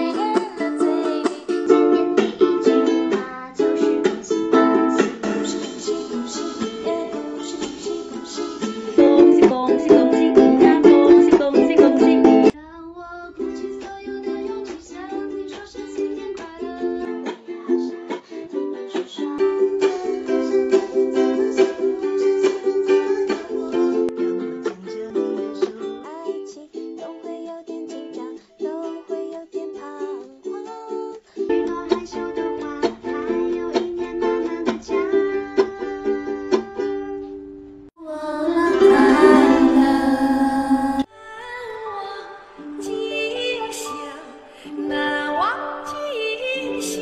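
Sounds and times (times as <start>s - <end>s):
woman singing: 0.0s - 37.2s, 38.0s - 47.0s
ukulele strumming: 0.0s - 47.0s.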